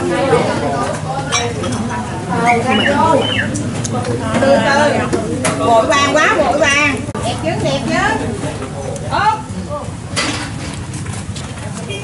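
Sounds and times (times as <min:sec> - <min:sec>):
diners talking: 0:00.0 - 0:12.0.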